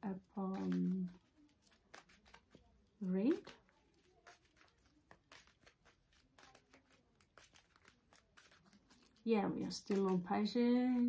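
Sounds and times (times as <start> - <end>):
cards being shuffled: 0.1 - 11.0.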